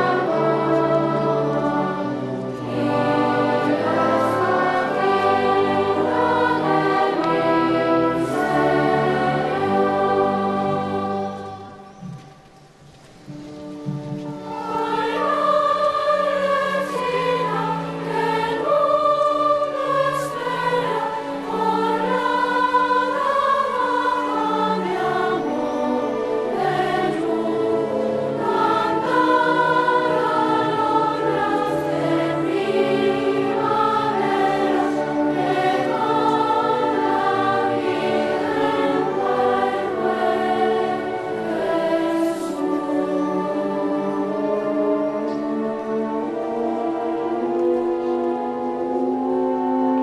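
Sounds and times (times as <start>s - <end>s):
children's choir singing: 0.0s - 12.6s, 13.3s - 50.0s
string orchestra: 0.0s - 50.0s.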